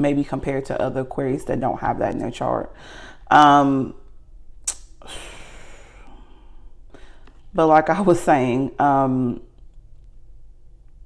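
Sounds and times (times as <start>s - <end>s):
woman sighing: 5.0s - 7.1s.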